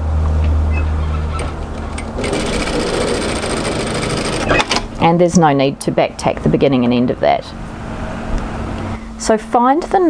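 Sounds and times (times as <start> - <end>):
sewing machine stitching: 1.2 - 4.8.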